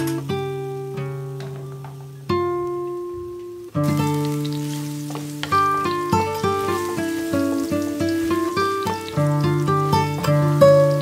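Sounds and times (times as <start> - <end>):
garlic sizzling in hot oil: 0.0 - 11.0
plucked background music: 3.8 - 11.0
spatula stirring in pan: 3.9 - 11.0.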